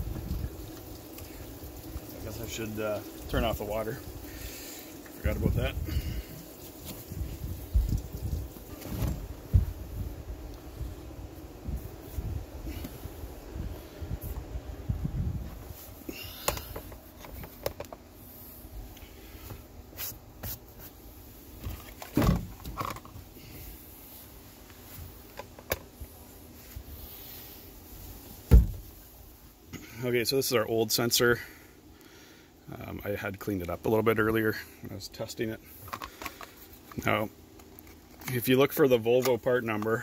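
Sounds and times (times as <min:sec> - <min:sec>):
wind rumble on microphone: 0:00.0 - 0:00.6, 0:05.3 - 0:06.4, 0:07.0 - 0:15.9
handling thump: 0:28.5 - 0:28.9.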